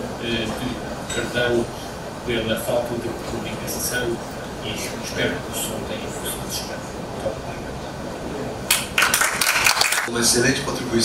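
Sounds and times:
audience applauding: 8.7s - 10.1s.

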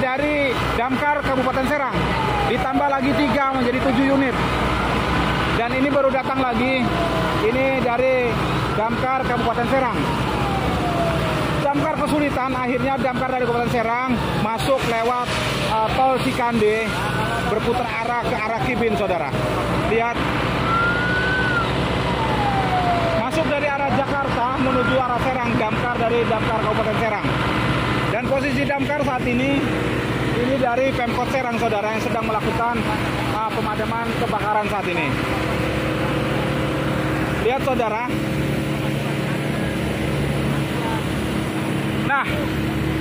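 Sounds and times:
fire engine siren wailing: 0.0s - 43.0s
hoses spraying water: 13.6s - 21.6s.

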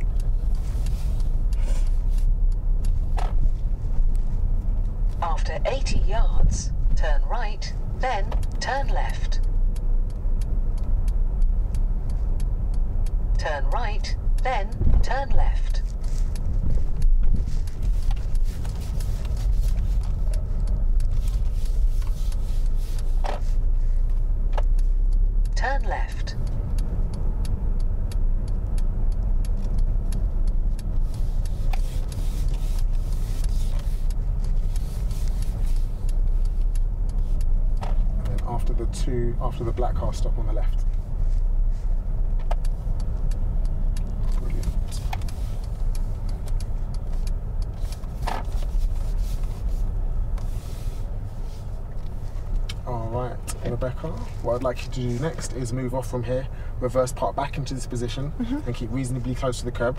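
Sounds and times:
car driving rumble from inside: 0.0s - 59.9s.

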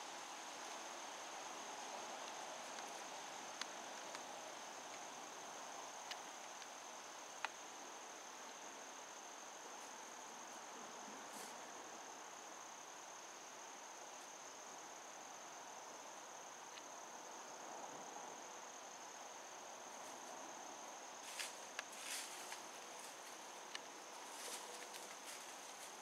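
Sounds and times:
crickets chirring: 0.0s - 26.0s.

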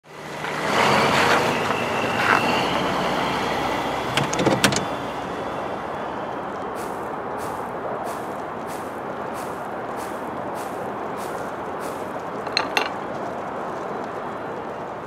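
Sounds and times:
footsteps: 6.6s - 14.0s.

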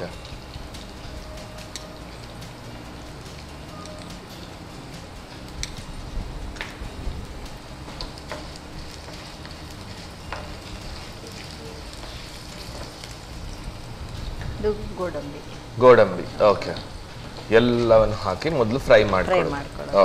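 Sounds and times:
food sizzling in oil: 0.0s - 20.0s.

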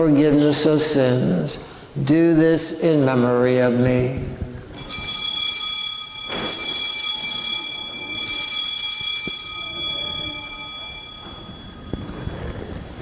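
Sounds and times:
altar bells ringing: 4.7s - 13.0s.

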